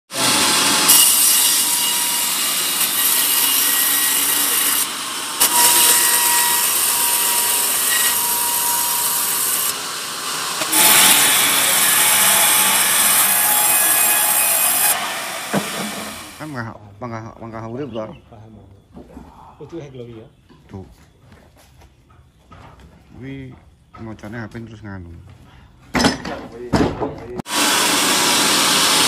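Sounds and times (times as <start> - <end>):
band saw cutting log: 0.1 - 16.6, 27.4 - 29.0.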